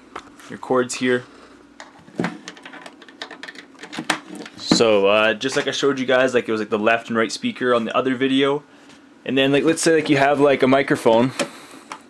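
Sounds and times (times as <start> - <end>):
cable jacks clicking and knocking: 1.8 - 4.9.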